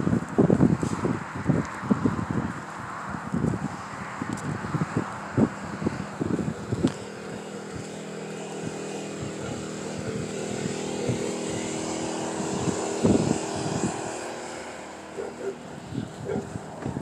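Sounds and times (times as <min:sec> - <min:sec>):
engine drone: 0:00.0 - 0:17.0.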